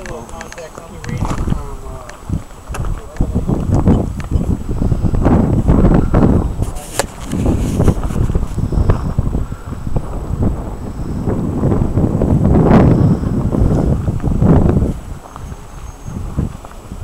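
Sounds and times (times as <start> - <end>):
wind buffeting microphone: 0.0 - 17.0.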